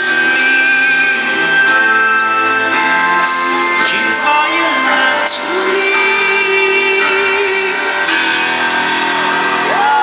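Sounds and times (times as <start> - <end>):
live synth-pop band: 0.0 - 10.0
man singing a long note: 3.2 - 8.2.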